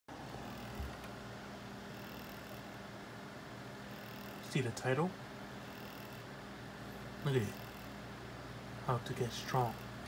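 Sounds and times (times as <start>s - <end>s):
electrical hum with hiss: 0.1s - 10.0s.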